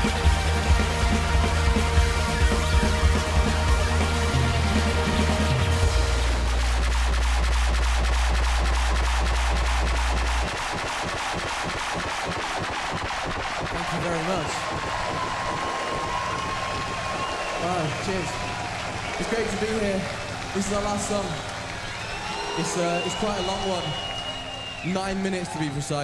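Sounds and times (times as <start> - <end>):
crowd applauding and cheering: 0.0 - 26.0.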